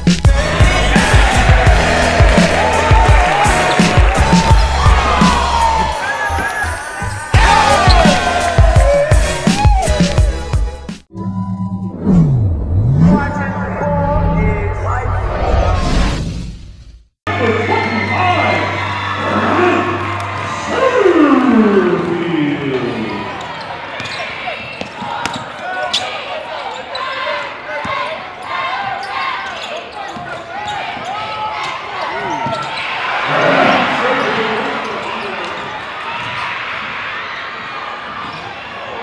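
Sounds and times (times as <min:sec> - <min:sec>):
crowd cheering: 0:00.3 - 0:10.3, 0:17.3 - 0:39.0
sneaker squeaks: 0:23.2 - 0:33.0, 0:37.4 - 0:38.8.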